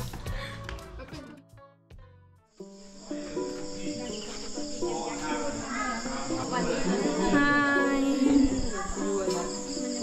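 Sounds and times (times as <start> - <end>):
music: 0.0 - 10.0
insects chirring: 2.6 - 10.0
voices: 3.0 - 10.0.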